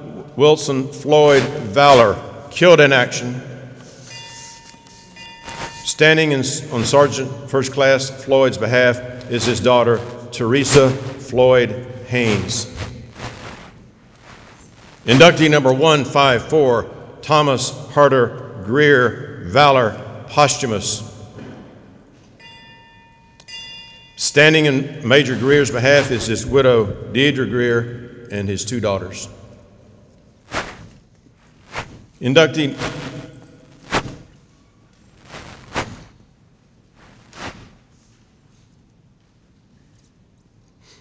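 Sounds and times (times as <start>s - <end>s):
hall room noise: 0.0s - 40.2s
high-pitched tones: 4.0s - 6.0s
bell ringing: 4.0s - 6.9s, 22.4s - 24.3s
short rush of noise: 5.4s - 5.8s, 9.3s - 11.4s, 12.0s - 15.5s, 25.3s - 26.5s, 30.5s - 34.4s, 35.1s - 36.2s, 37.0s - 38.0s.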